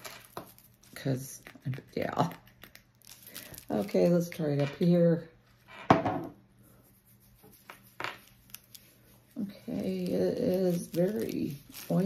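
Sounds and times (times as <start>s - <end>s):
woman's voice: 1.0s - 2.4s, 3.7s - 5.3s, 9.4s - 12.0s
hand rubbing oil into skin: 6.7s - 12.0s.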